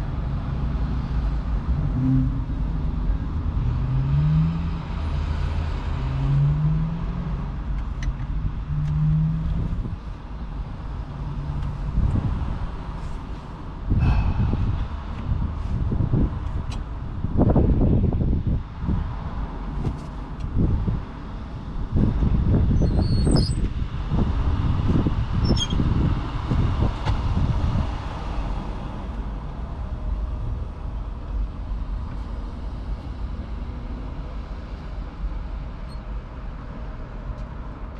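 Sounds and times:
low vehicle engine rumble: 0:00.0 - 0:37.9
faint high squeaks: 0:25.4 - 0:25.8.

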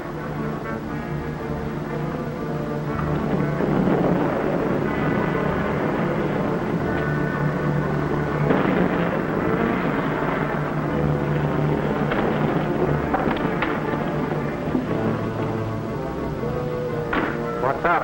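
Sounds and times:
orchestral film score: 0:00.0 - 0:18.0.

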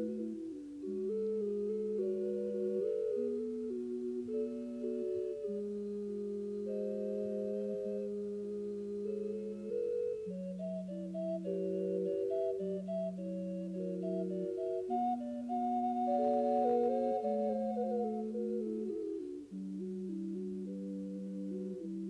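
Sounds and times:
ensemble music in close harmony: 0:00.0 - 0:22.0.

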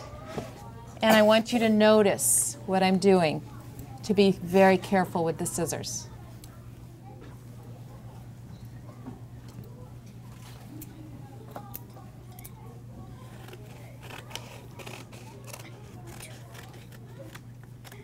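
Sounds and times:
scissors snipping paper: 0:13.3 - 0:18.0.

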